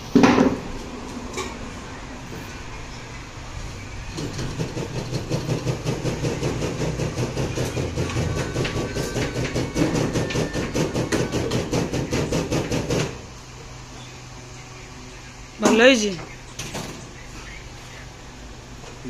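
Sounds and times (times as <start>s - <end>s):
machine clattering: 4.1s - 13.2s.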